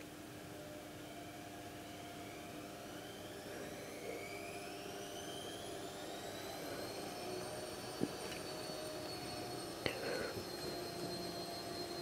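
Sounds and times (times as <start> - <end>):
faint rising whining tones: 0.0 - 12.0.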